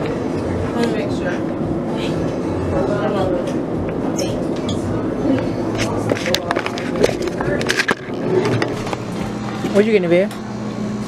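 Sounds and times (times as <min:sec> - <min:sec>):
indistinct voices: 0:00.0 - 0:10.5.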